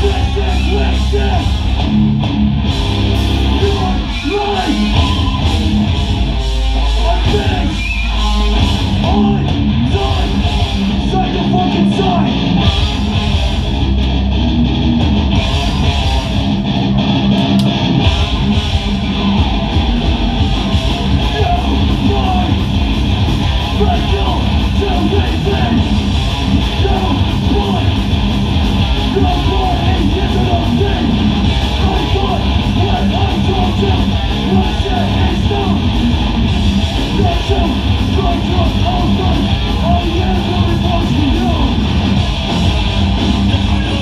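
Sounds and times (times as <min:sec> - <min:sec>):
vocalist shouting: 0:00.0 - 0:01.6, 0:21.2 - 0:22.6, 0:29.1 - 0:35.9
bass guitar: 0:00.0 - 0:44.0
distorted electric guitars: 0:00.0 - 0:44.0
drums: 0:00.0 - 0:44.0.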